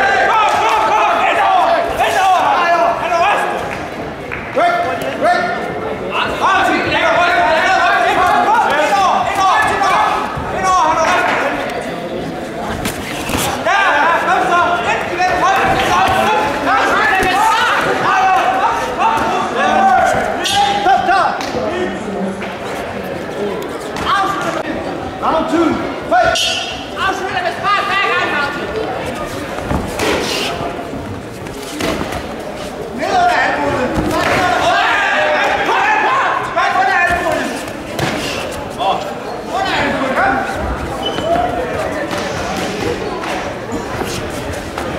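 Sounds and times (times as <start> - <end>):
voices shouting in a hall: 0.0 - 44.9
people shouting: 13.2 - 21.0, 33.0 - 37.5.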